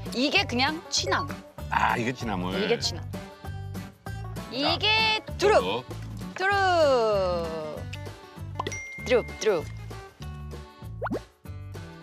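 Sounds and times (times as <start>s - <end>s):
upbeat background music: 0.0s - 12.0s.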